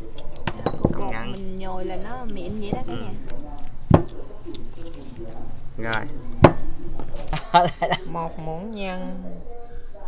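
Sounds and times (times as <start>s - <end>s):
quiet talk: 0.0s - 10.0s.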